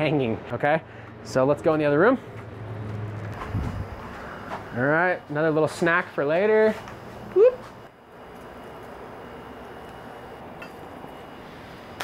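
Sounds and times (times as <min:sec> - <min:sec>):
circulation fans whooshing: 0:01.1 - 0:12.0.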